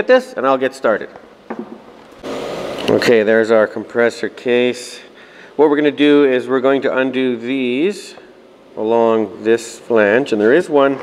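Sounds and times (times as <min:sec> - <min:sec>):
mechanical whirring hiss: 0:02.0 - 0:05.2.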